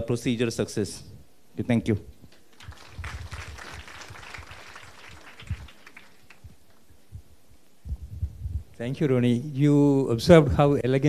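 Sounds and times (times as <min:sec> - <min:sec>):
light audience applause: 0:02.3 - 0:06.9
low thumps: 0:06.4 - 0:08.8.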